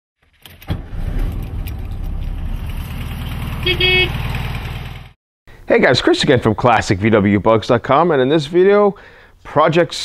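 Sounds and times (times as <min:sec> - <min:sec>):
car engine starting and idling: 0:00.4 - 0:05.2.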